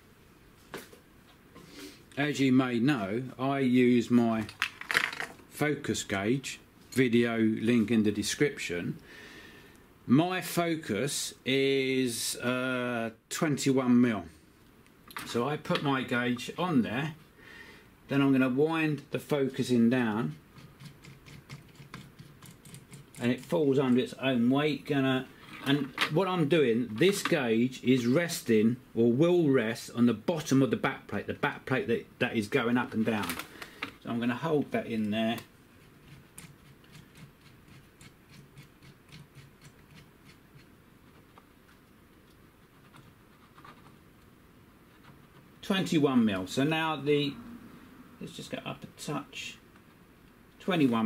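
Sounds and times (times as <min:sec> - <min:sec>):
wooden knob ticking and scratching: 0:35.0 - 0:41.5.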